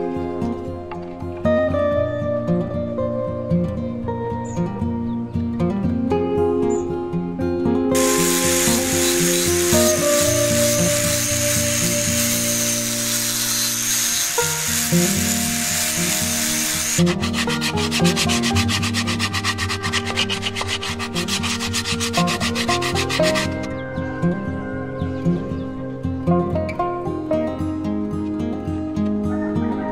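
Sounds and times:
guitar music: 0.0s - 29.9s
angle grinder sanding wood: 8.0s - 23.7s
rhythmic rubbing strokes: 8.0s - 23.7s.

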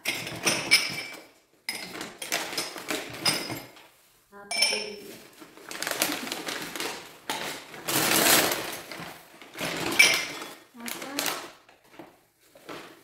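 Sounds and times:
rubbish bags rustling: 0.0s - 13.0s
glass clink: 4.5s - 5.0s.

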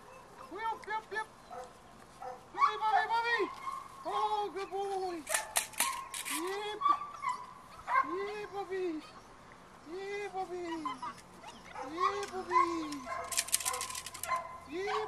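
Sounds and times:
puppies yipping and barking: 0.0s - 15.0s
scratchy rustle: 12.2s - 14.4s.

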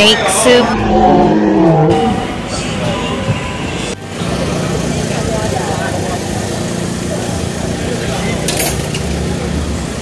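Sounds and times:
crowd voices talking: 0.0s - 10.0s
low engine hum: 0.2s - 5.4s
motor scooter engines running: 1.6s - 10.0s.

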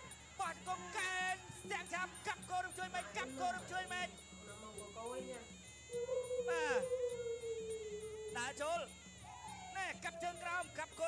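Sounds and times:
nasal reed pipe melody: 0.0s - 11.0s.

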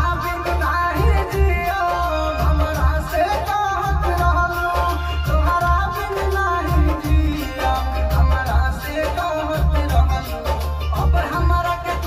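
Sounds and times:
backing music with low beat: 0.0s - 12.0s
young man singing into microphone: 0.0s - 12.0s.

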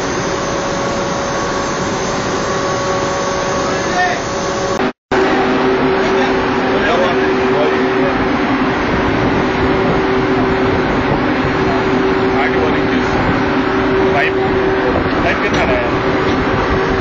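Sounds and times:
ship engine room machinery hum: 0.0s - 17.0s.

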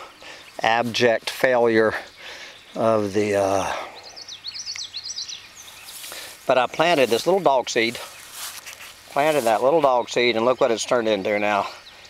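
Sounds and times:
songbird singing: 0.0s - 12.0s.

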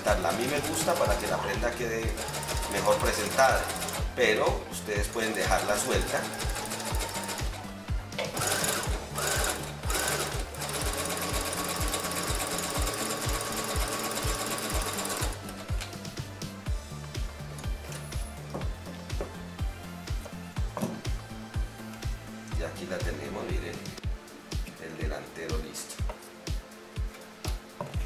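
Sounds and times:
background music: 0.0s - 28.0s
sewing machine stitching: 0.2s - 4.1s, 5.1s - 7.6s, 8.2s - 15.4s.

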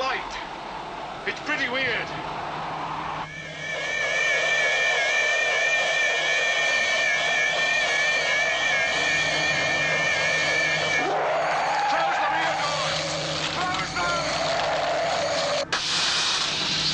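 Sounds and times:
shrill warbling electronic whine: 3.2s - 16.9s.

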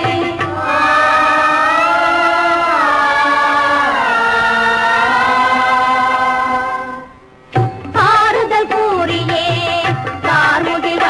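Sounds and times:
person singing devotional song: 0.0s - 11.0s.

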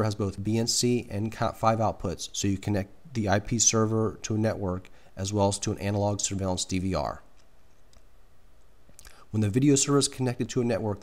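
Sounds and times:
narrator speaking: 0.0s - 7.3s, 9.0s - 11.0s
faint background noise: 0.0s - 11.0s.

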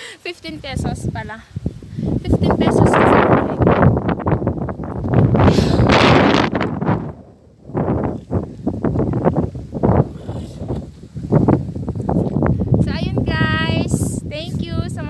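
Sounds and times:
wind buffeting microphone: 0.4s - 15.0s.

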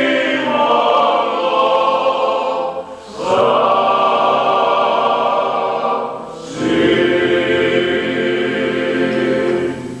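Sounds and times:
male choir singing a cappella: 0.0s - 10.0s.

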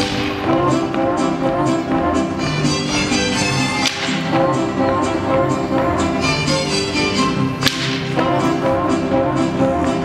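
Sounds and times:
dancers' footwork strikes: 0.0s - 1.6s, 2.8s - 8.4s
mariachi music with violins: 0.0s - 10.0s
loud crack: 7.6s - 8.1s.

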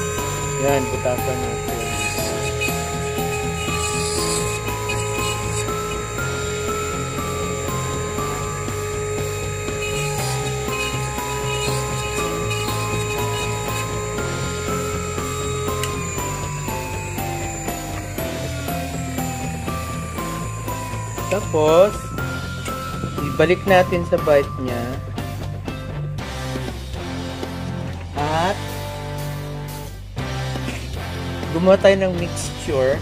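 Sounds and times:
lathe spinning and drilling: 0.0s - 24.2s
background music: 0.0s - 33.0s.

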